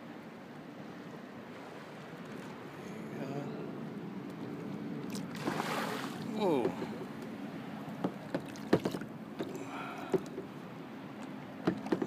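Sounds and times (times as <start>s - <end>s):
wind: 0.0s - 12.0s
water wash: 4.6s - 7.0s
water slapping against kayak hull: 5.2s - 6.8s, 8.0s - 9.5s, 11.6s - 12.0s.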